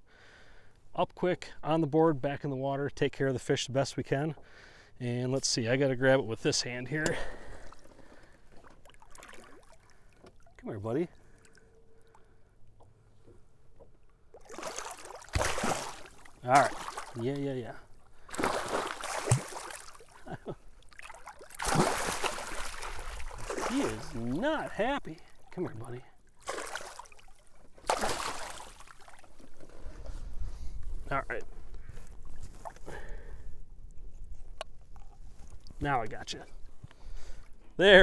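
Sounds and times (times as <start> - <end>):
faint water drips: 7.0 - 21.7
fish splashing in water: 8.6 - 10.5, 14.3 - 17.2, 18.2 - 20.2, 20.9 - 24.2, 26.4 - 29.4.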